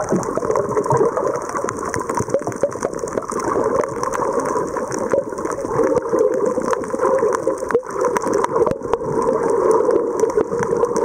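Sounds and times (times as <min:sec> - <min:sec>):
underwater clicks and crackles: 0:00.0 - 0:11.0
underwater water rush: 0:00.0 - 0:11.0.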